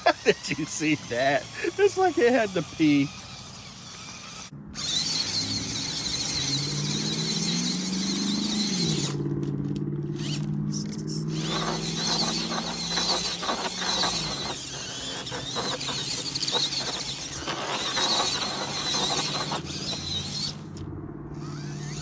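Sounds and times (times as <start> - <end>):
electric motor whining: 0.0 - 22.0.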